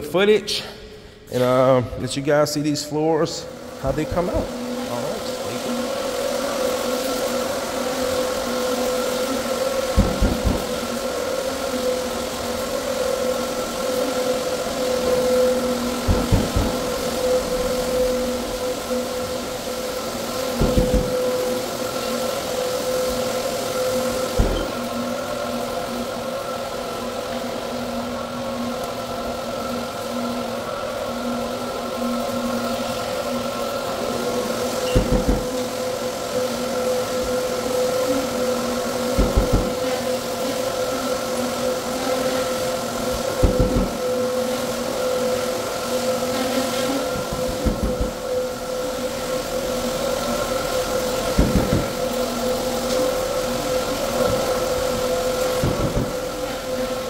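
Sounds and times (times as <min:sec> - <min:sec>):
floor sander on concrete: 0:01.2 - 0:57.0
low thumps: 0:16.0 - 0:17.1.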